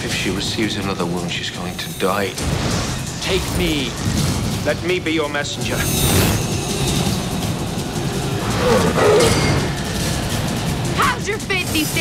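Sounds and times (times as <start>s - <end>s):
film score music: 0.0s - 12.0s
loud rushing rumbling noise: 2.3s - 12.0s.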